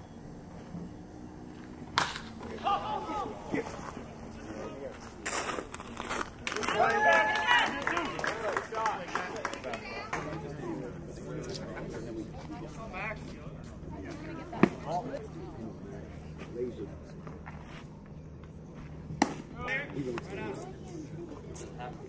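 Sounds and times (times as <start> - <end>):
wooden bat hitting baseball: 1.9 - 2.7, 19.2 - 19.7
people calling out and shouting: 2.5 - 4.4.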